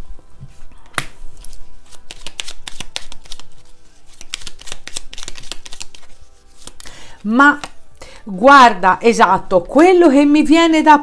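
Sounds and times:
cards being shuffled: 0.9s - 6.9s.

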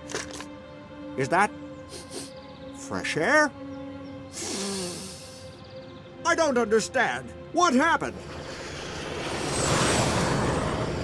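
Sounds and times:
soft background music: 0.0s - 10.7s
low falling hum: 8.1s - 11.0s.

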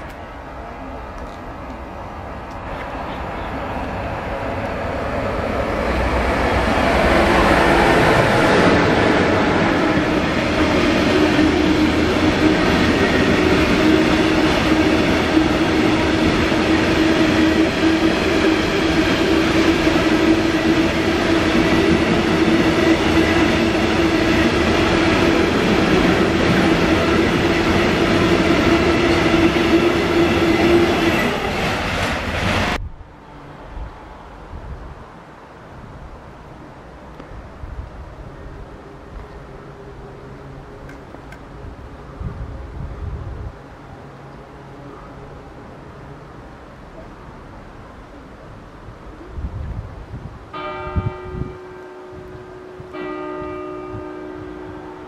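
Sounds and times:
freight train passing: 0.0s - 55.0s.

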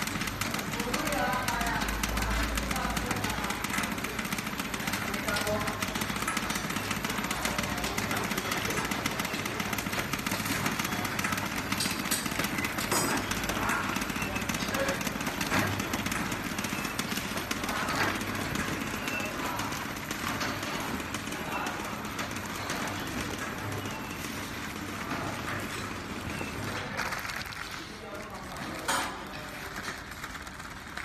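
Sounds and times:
packing machine clattering: 0.0s - 31.0s.

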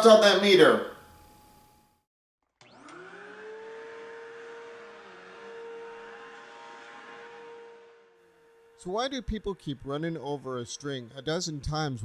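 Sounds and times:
vacuum cleaner motor whine: 2.4s - 11.8s.

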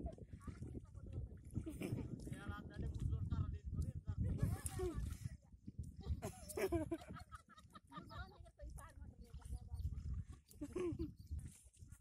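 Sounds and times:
people talking: 0.0s - 7.2s, 7.9s - 11.2s.

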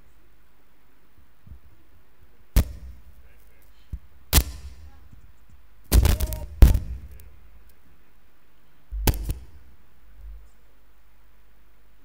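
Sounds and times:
knocks and thumps: 5.9s - 7.2s, 8.9s - 9.6s.

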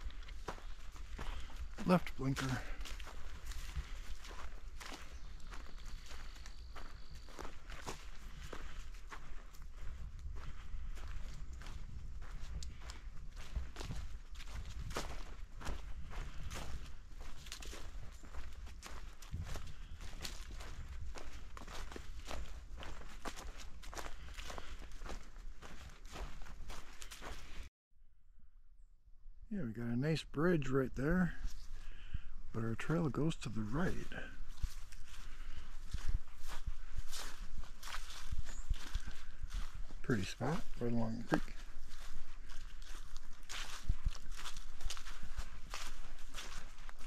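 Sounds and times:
footsteps on leaves and dirt: 0.0s - 27.7s, 30.7s - 47.0s.

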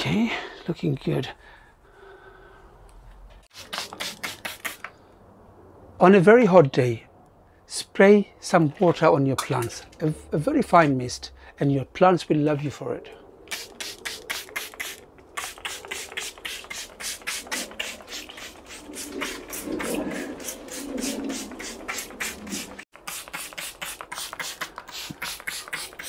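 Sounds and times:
spray bottle hissing: 3.5s - 4.9s, 13.5s - 26.0s.

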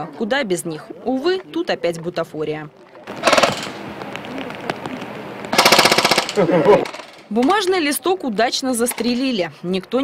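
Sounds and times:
airsoft rifles firing bursts: 3.1s - 3.9s, 5.5s - 7.3s.

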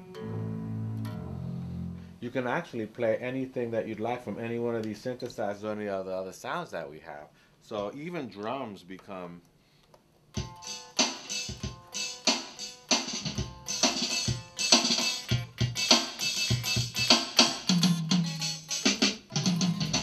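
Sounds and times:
low bass tone: 0.0s - 2.2s
picked guitar notes: 0.0s - 2.2s, 10.4s - 20.0s
synth notes: 0.0s - 2.2s.

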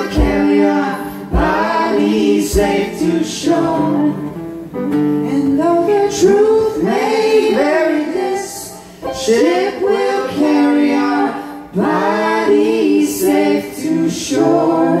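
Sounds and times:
vocal trio singing in harmony: 0.0s - 15.0s.

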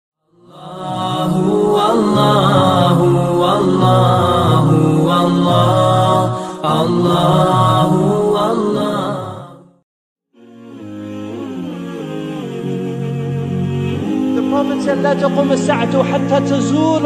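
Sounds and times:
voice chanting long wavering notes: 0.4s - 9.6s, 10.4s - 17.0s.

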